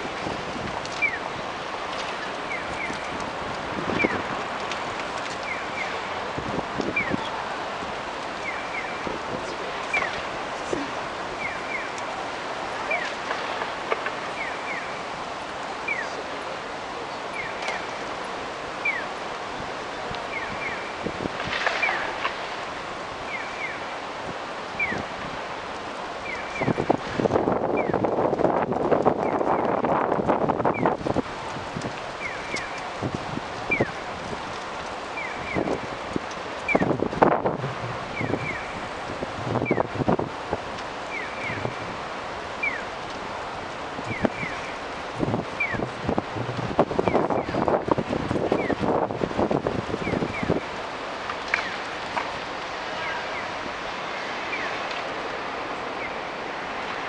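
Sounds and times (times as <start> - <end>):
street noise: 0.0 - 57.0
traffic rush: 0.0 - 57.0.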